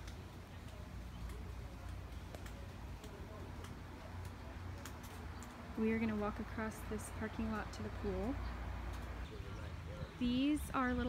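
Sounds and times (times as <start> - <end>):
footsteps on pavement: 0.0 - 11.0.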